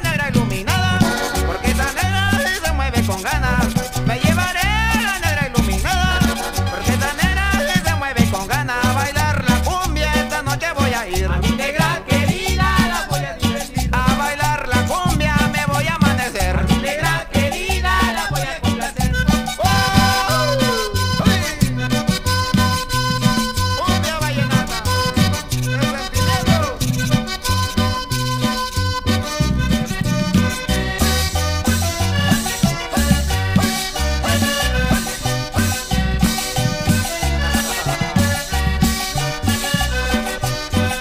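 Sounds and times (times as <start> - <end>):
cumbia music with bass and percussion: 0.0 - 41.0.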